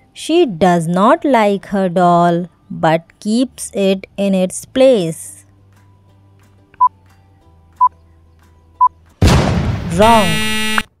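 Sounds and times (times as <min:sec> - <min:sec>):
faint background music: 0:00.0 - 0:10.7.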